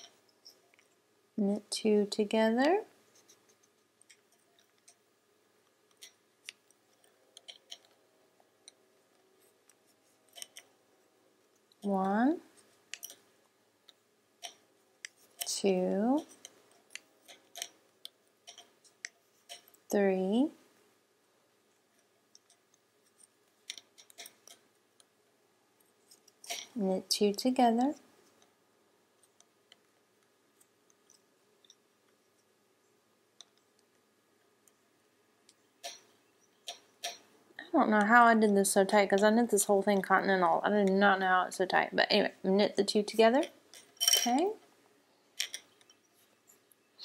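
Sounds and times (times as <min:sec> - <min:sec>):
wooden knitting needles clicking: 0:00.0 - 0:01.0, 0:02.6 - 0:08.0, 0:08.6 - 0:10.8, 0:11.4 - 0:20.0, 0:21.8 - 0:25.2, 0:29.2 - 0:32.6, 0:33.3 - 0:40.0, 0:45.4 - 0:46.8.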